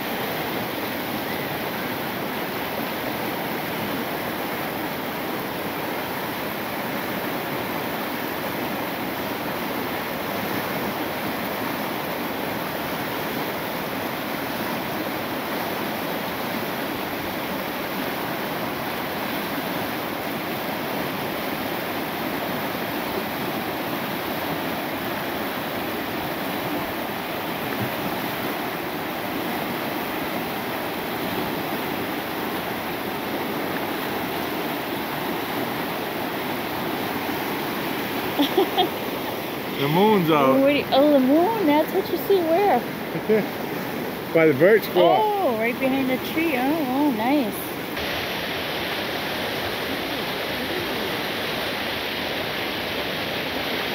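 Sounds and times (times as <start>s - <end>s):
river water rushing over rocks: 0.0s - 53.9s.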